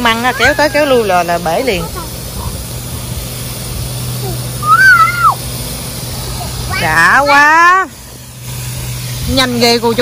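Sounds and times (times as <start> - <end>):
steady low hum: 0.0 - 10.0
toddler squealing: 4.6 - 5.4.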